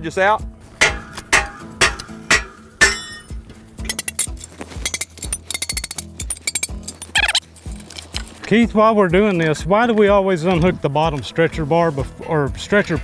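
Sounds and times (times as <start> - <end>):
hammer knocking steel: 0.8 - 3.4
metal clinks and rattles: 0.8 - 8.4.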